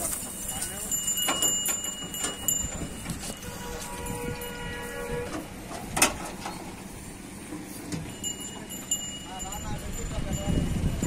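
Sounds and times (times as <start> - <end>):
horn steady note: 3.4 - 5.5.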